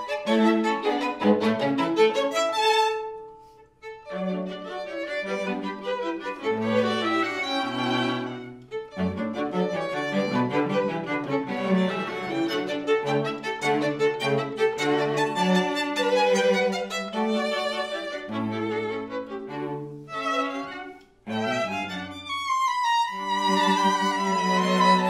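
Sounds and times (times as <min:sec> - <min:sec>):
string quartet playing: 0:00.0 - 0:25.0.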